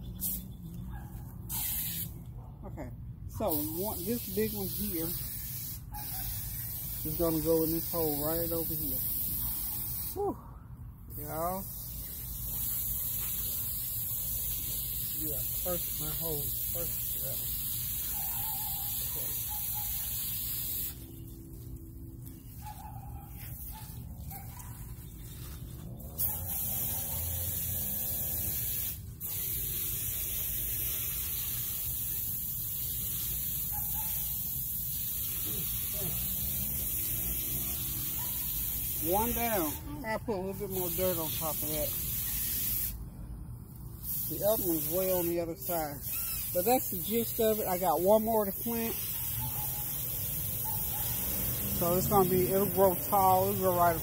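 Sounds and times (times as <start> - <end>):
lawn sprinkler spraying water: 0.0 - 0.6, 1.4 - 2.2, 3.4 - 10.3, 11.1 - 43.0, 43.7 - 54.0
high hiss: 34.5 - 43.0, 44.0 - 54.0.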